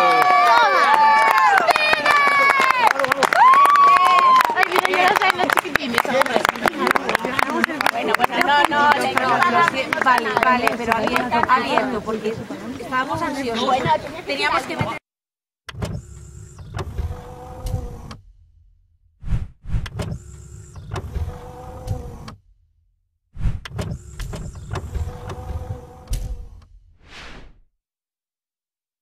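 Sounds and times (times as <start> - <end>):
motorised sliding sounds: 15.7 - 18.4, 19.2 - 22.5, 23.4 - 27.6
steady hum: 15.8 - 22.6, 23.5 - 26.9
short whoosh: 18.1 - 20.1, 23.4 - 23.7, 26.3 - 27.7.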